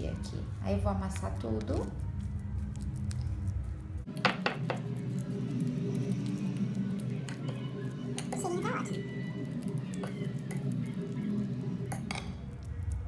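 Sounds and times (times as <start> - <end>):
background music: 0.0 - 13.0
fork mashing banana on plate: 1.4 - 13.0.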